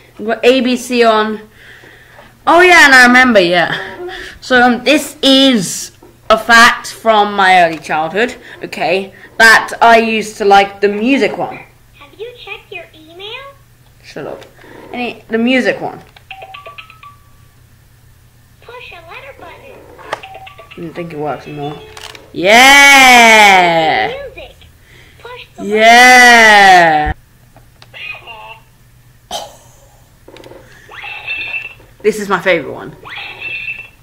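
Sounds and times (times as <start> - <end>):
electronic toy jingle beeps: 16.3 - 17.4, 20.2 - 20.8.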